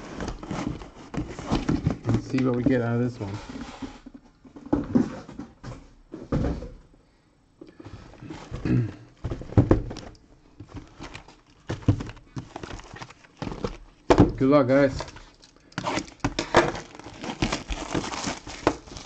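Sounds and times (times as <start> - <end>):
cardboard boxes knocking on table: 8.5 - 14.4.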